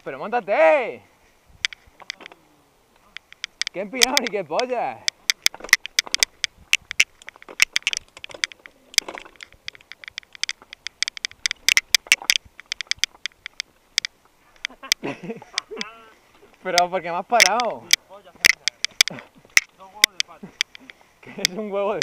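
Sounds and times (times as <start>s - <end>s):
bike rattling: 3.1s - 22.0s
tyres crunching over loose stones: 3.2s - 22.0s.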